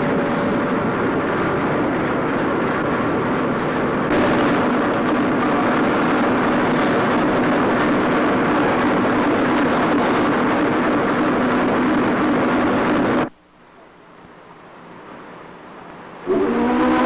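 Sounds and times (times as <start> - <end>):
constant low hum: 0.0 - 17.0
steam engine mechanical rush: 0.0 - 17.0.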